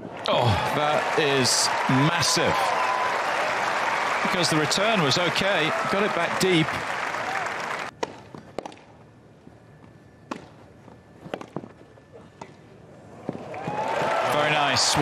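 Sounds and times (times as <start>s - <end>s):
crowd applause and cheering: 0.0s - 7.9s, 13.4s - 15.0s
rackets striking tennis ball: 7.9s - 8.9s, 10.3s - 10.6s.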